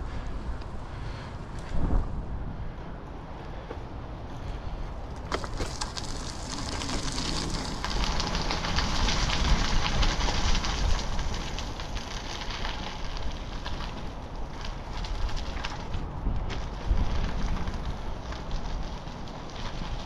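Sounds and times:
rolling tyre hiss: 0:00.0 - 0:15.9
wind buffeting microphone: 0:00.0 - 0:20.0.

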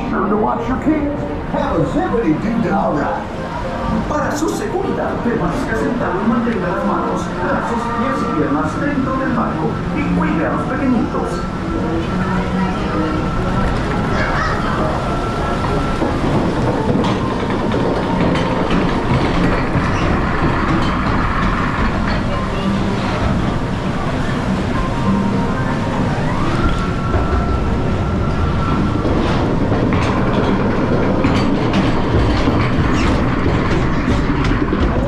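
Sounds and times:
conveyor mechanical clatter: 0:00.0 - 0:35.0
running water: 0:00.0 - 0:35.0.

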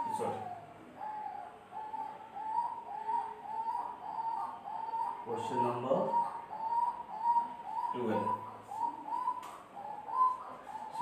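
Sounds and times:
bird calling: 0:00.0 - 0:11.0.

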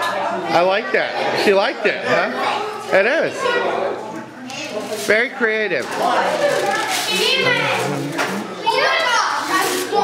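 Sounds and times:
children talking and chattering: 0:00.0 - 0:10.0.

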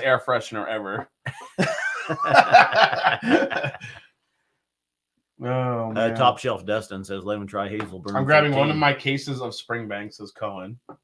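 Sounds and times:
men laughing: 0:01.2 - 0:04.0.

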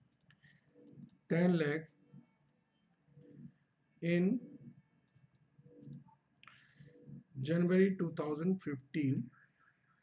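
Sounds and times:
person speaking: 0:00.9 - 0:02.1.

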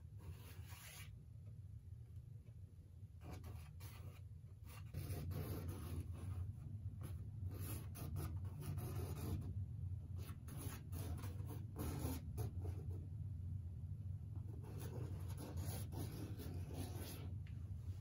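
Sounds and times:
steady low hum: 0:00.0 - 0:18.0
charcoal scratching on canvas: 0:00.3 - 0:01.1.

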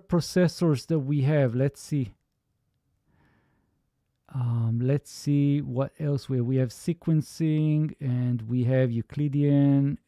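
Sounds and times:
man speaking: 0:00.0 - 0:02.2, 0:04.3 - 0:10.0
faint exhale: 0:03.1 - 0:03.8.

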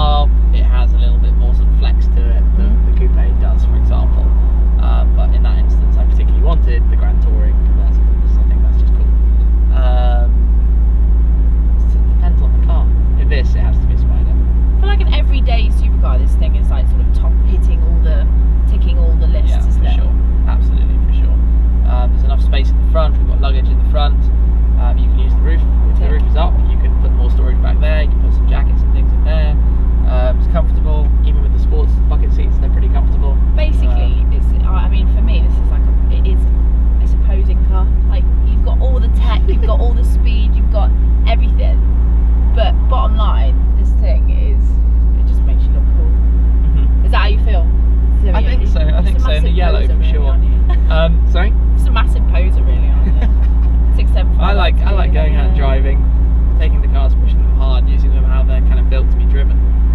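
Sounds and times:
voices talking: 0:00.0 - 0:10.4, 0:11.8 - 0:41.8, 0:42.5 - 0:59.6
car engine low drone: 0:00.0 - 0:59.9.

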